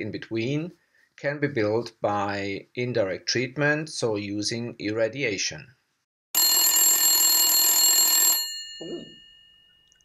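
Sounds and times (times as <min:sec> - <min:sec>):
telephone bell ringing: 0:06.4 - 0:10.0.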